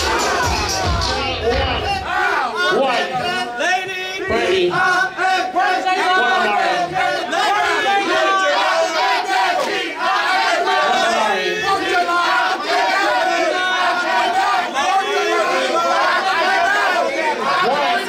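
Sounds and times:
crowd yelling and cheering: 0.0s - 18.0s.

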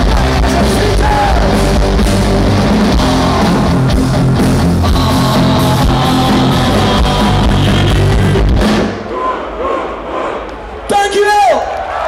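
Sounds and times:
punk rock band playing live: 0.0s - 9.0s
crowd cheering and shouting: 0.0s - 12.0s.

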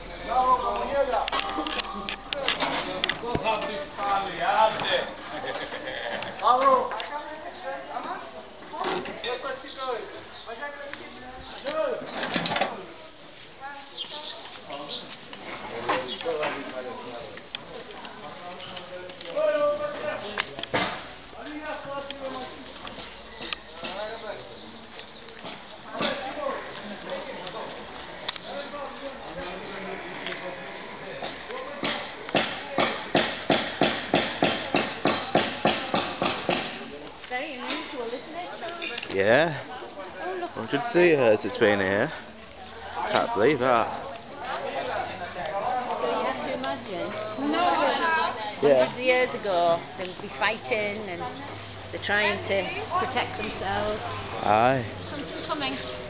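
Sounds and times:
footsteps on stone street: 0.0s - 8.8s, 12.8s - 56.0s
people's voices: 0.0s - 56.0s.

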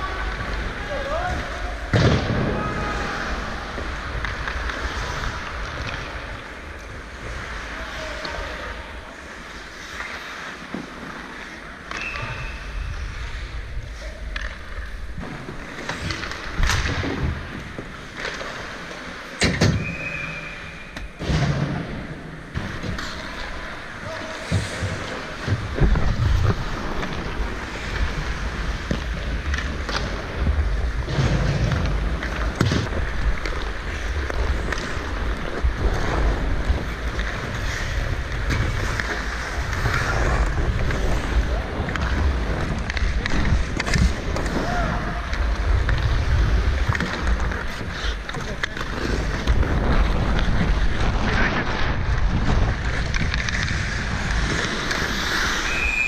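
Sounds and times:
skates scraping ice: 0.0s - 56.0s
sticks and puck clacking: 0.0s - 56.0s.

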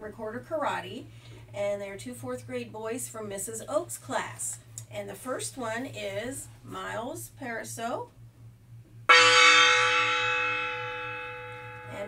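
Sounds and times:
handheld gong ringing: 9.1s - 12.0s.

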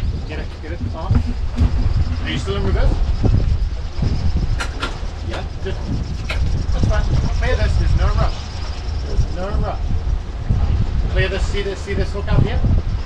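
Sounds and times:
boat engine rumbling: 0.0s - 13.0s.

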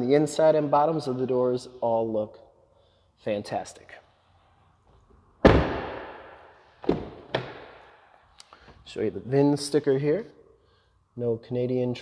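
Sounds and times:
truck door slamming: 5.4s - 7.8s.

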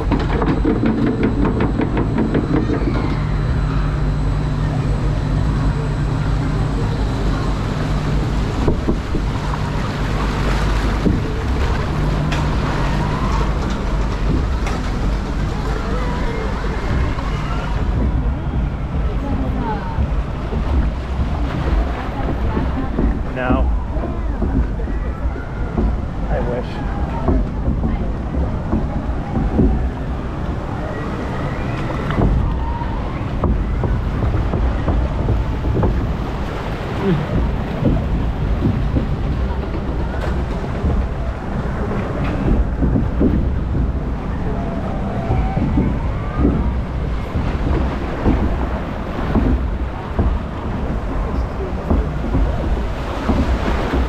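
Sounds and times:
water rushing along flume: 0.0s - 54.0s
wind buffeting microphone: 0.0s - 54.0s.

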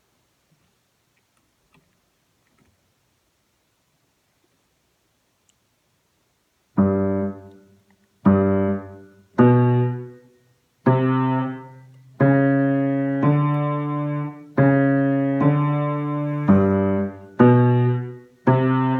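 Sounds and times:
low piano notes: 6.8s - 18.9s.

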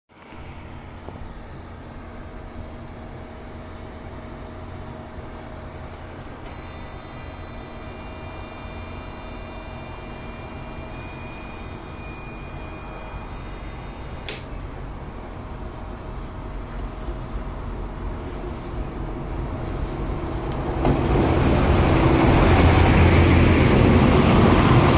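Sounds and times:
high ringing squeal: 6.4s - 14.3s
sharp click: 14.2s - 14.5s
train rumbling: 15.2s - 24.9s.

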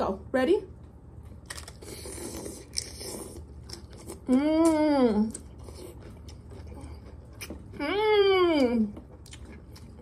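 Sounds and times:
crackling chewing: 1.4s - 7.8s.

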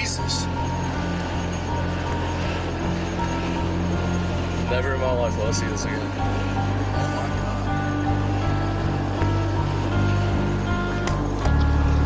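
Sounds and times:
low rumble inside moving car: 0.0s - 12.0s.

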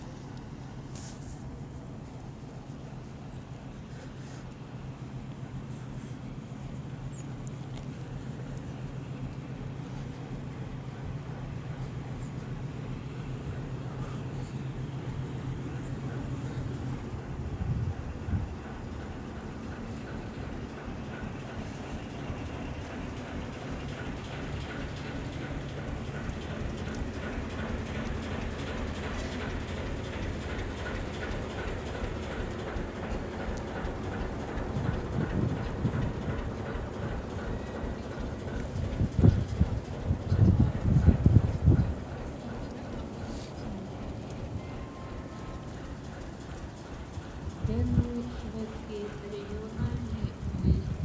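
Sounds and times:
train wheels rumbling on rails: 0.0s - 51.0s.

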